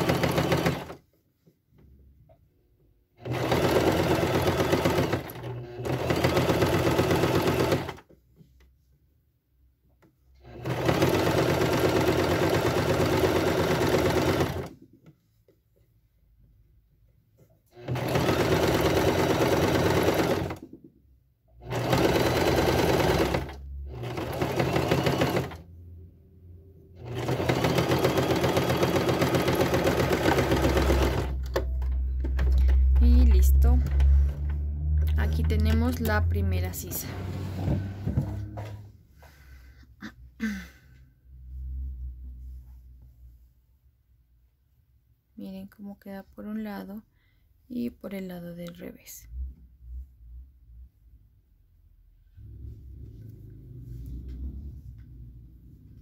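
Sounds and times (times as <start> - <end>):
sewing machine stitching: 0.0 - 1.0, 3.2 - 8.1, 10.4 - 14.8, 17.7 - 20.8, 21.6 - 25.7, 27.0 - 37.8
low rumble: 31.8 - 38.8, 52.2 - 56.0.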